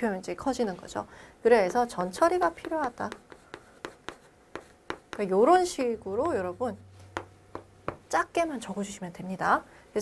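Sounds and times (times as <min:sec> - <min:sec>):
chalk tapping and scraping on board: 0:02.4 - 0:05.4, 0:07.1 - 0:08.1.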